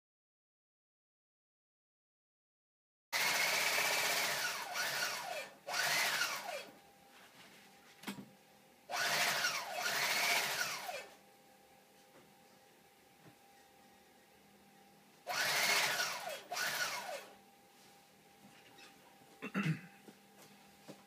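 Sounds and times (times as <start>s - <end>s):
sewing machine stitching: 3.2s - 6.7s, 8.9s - 11.1s, 15.3s - 17.3s.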